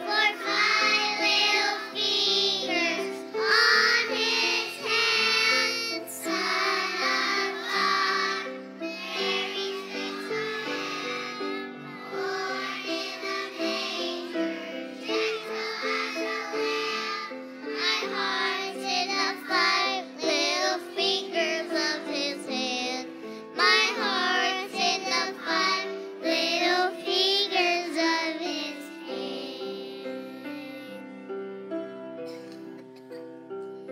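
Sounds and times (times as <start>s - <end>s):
children's choir singing: 0.0s - 30.9s.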